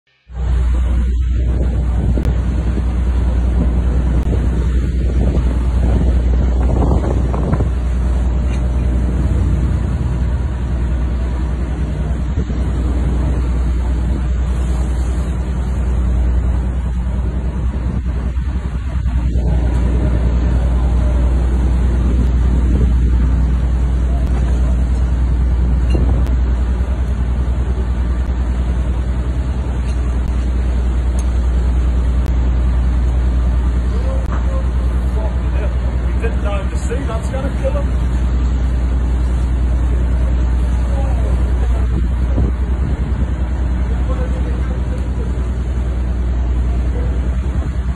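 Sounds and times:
ship engine rumble: 0:00.0 - 0:47.9
rough sea: 0:00.3 - 0:47.9
wind buffeting microphone: 0:00.4 - 0:47.9.

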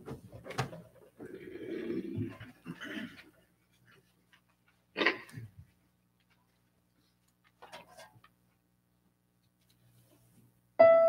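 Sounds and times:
small rustling noises: 0:02.1 - 0:08.7, 0:09.4 - 0:10.5.

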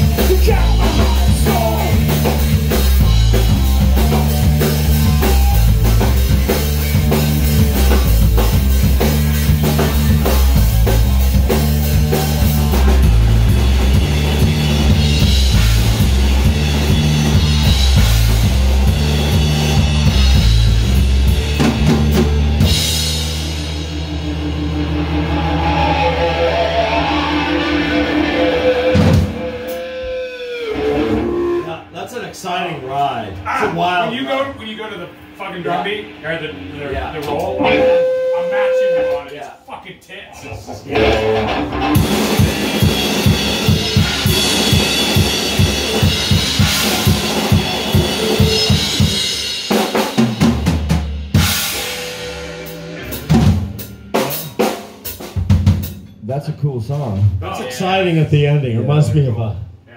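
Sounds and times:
voices: 0:00.0 - 0:02.4, 0:31.3 - 0:41.5, 0:56.2 - 0:59.9
drum kit: 0:00.0 - 0:31.8, 0:40.7 - 0:59.9
bass guitar: 0:00.0 - 0:31.9, 0:33.3 - 0:39.2, 0:40.4 - 0:59.9
electric guitar riff: 0:00.0 - 0:31.9, 0:36.0 - 0:39.4, 0:40.8 - 0:50.6, 0:51.3 - 0:55.6.

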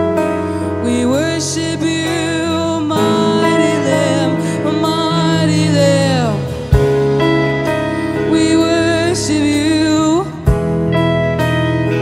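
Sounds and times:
worship band music: 0:00.0 - 0:12.0.

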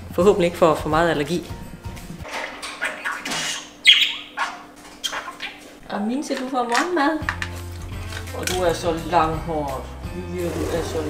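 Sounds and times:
budgerigar chirping: 0:02.7 - 0:05.7.

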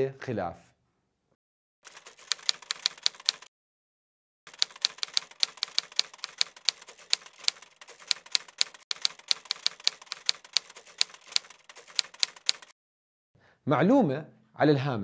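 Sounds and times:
typewriter key clicks: 0:01.9 - 0:03.5, 0:04.5 - 0:12.7.

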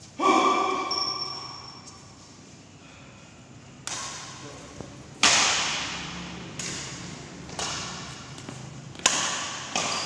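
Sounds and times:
racket striking shuttlecock: 0:05.2 - 0:10.0.

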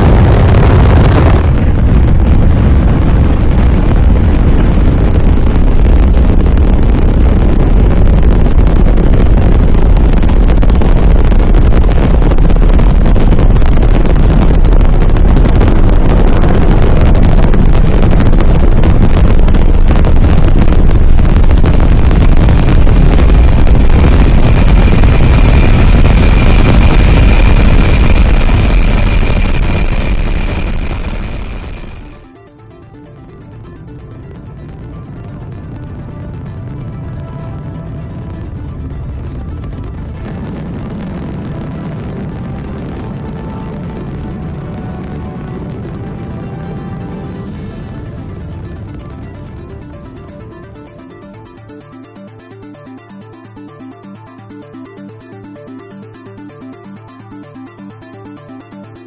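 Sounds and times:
rocket launch roar: 0:00.0 - 0:32.3, 0:35.4 - 0:50.8
synthesizer music: 0:20.9 - 0:59.0.

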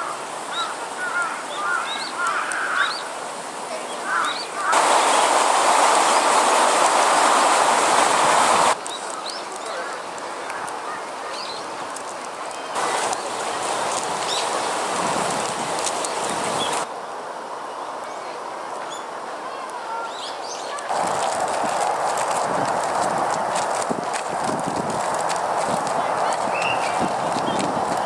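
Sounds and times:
loud rushing noise: 0:04.7 - 0:08.8
small birds chirping: 0:11.3 - 0:11.8, 0:14.2 - 0:14.6, 0:22.9 - 0:28.0.

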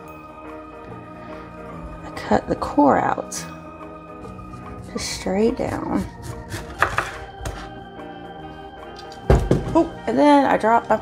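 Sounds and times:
background music: 0:00.0 - 0:11.0
knife cutting onto wooden board: 0:06.2 - 0:07.7.

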